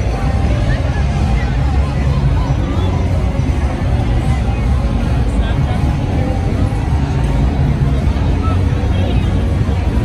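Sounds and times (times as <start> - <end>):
low rumble of traffic: 0.0 - 10.0
people talking in a crowd: 0.0 - 10.0.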